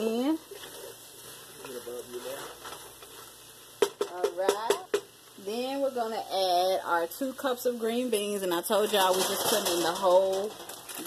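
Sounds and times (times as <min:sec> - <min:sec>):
vegetables sizzling in a pot: 0:00.0 - 0:11.0.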